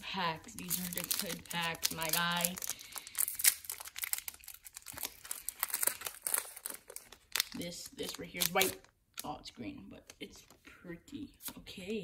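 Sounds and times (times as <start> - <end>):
foil wrapper crinkling: 0.0 - 9.3.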